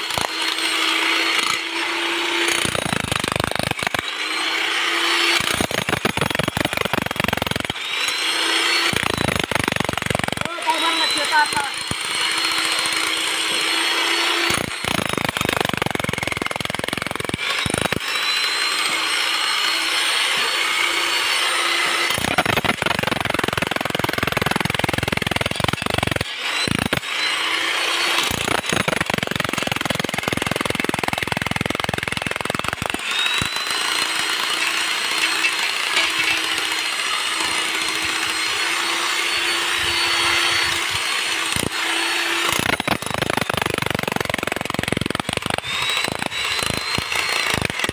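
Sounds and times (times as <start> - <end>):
demolition hammer chiselling concrete: 0.0 - 47.9.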